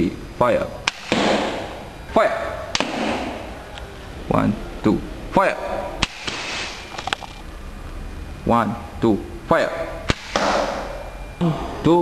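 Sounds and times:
coilgun firing crack: 0.9s - 1.6s, 6.0s - 6.9s, 10.1s - 10.8s.

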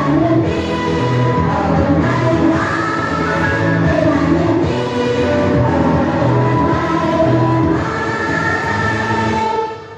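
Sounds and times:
song with sung vocals: 0.0s - 9.9s.

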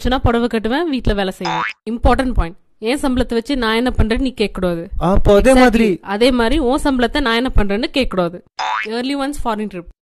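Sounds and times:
springy boing sound effect: 1.5s - 1.8s, 8.6s - 8.9s.

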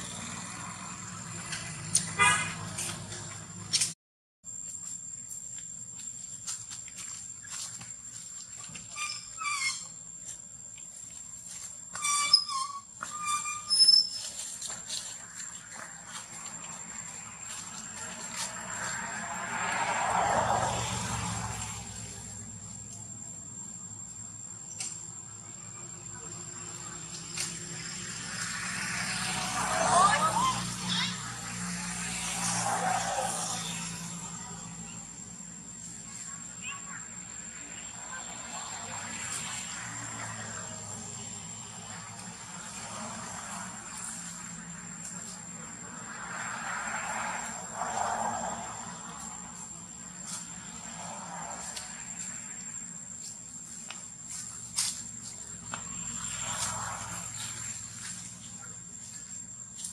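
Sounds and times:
baby monkey squeaking: 8.9s - 9.9s, 12.0s - 14.3s.

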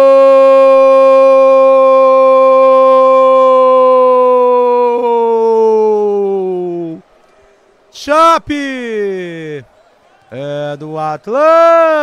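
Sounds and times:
man shouting a long goal cry: 0.0s - 7.1s, 7.9s - 12.0s.

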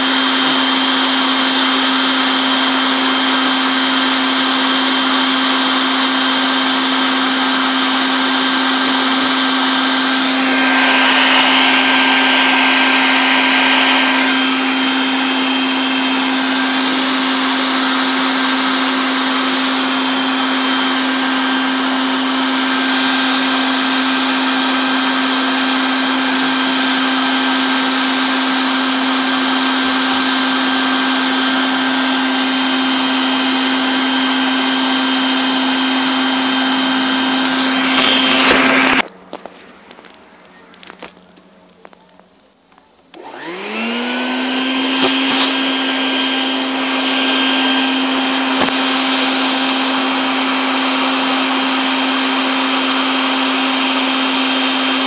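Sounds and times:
vacuum cleaner running: 0.0s - 41.9s, 43.1s - 55.0s
low hum: 9.9s - 17.9s.

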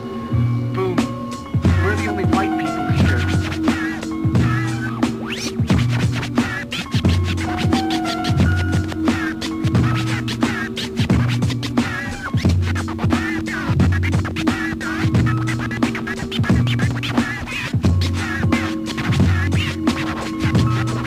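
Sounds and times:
hip hop beat with bass line: 0.0s - 21.0s
turntable scratching: 0.8s - 21.0s.

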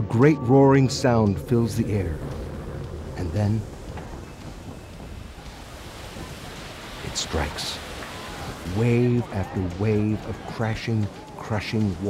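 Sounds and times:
ocean surf: 0.2s - 12.0s
wind rushing: 1.0s - 12.0s.

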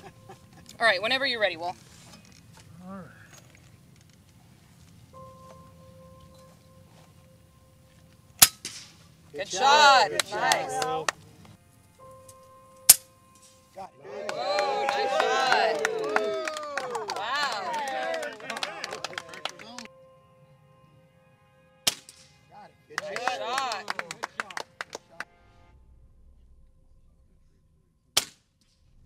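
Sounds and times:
air rifle shots: 8.4s - 9.0s.

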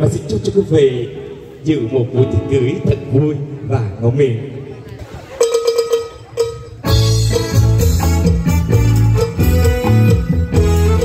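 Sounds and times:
electronic keyboard: 2.0s - 4.0s
bass guitar: 5.4s - 11.0s.

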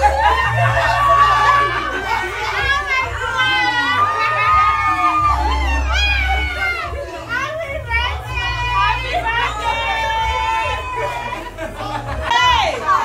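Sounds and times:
excited women chattering: 0.0s - 13.0s
women shrieking and talking: 0.0s - 13.0s.

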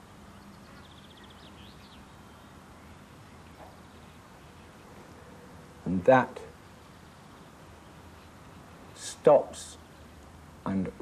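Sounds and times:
tape hiss: 0.0s - 11.0s.

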